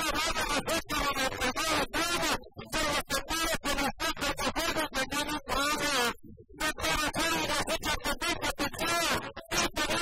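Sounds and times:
man singing fast verse: 0:00.0 - 0:10.0.

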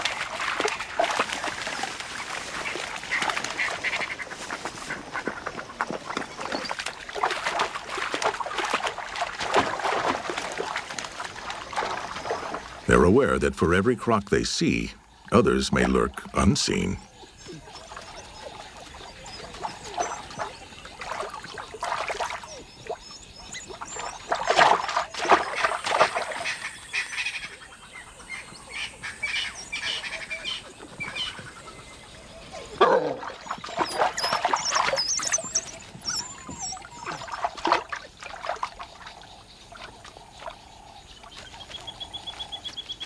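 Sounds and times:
wild dogs chirping and twittering: 0:00.0 - 0:13.4, 0:15.0 - 0:43.0.

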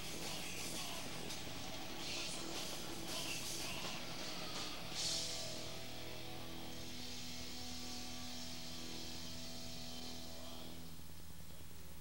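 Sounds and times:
guitar amplifier hum: 0:00.0 - 0:12.0.

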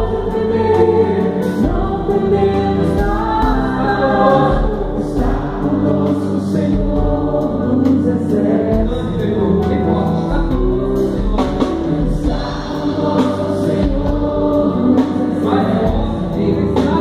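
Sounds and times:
vocal group singing in harmony: 0:00.0 - 0:17.0.

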